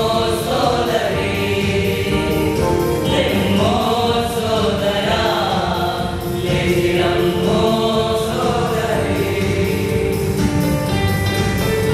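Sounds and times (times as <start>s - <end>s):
male choir singing: 0.0s - 11.0s.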